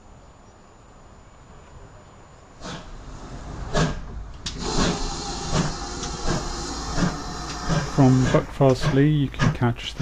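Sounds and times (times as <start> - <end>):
steam hissing: 2.6 - 9.6
steam locomotive exhaust chuffs: 2.6 - 10.0.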